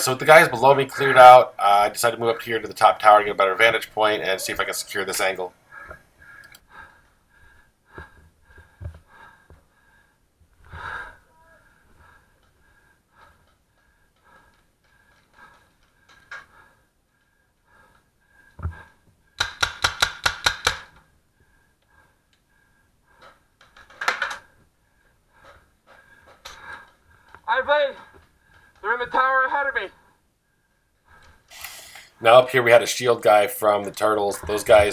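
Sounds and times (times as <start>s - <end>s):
faint knocks and thumps: 7.9s - 9.7s
paintball marker firing: 19.4s - 20.9s.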